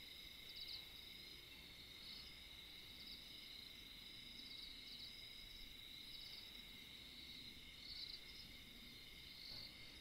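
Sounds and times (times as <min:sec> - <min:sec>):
insect chirping trill: 0:00.0 - 0:10.0.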